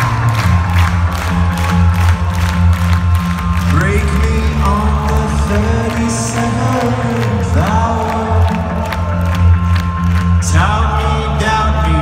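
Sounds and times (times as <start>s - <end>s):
crowd noise: 0.0s - 12.0s
rock band playing live: 0.0s - 12.0s.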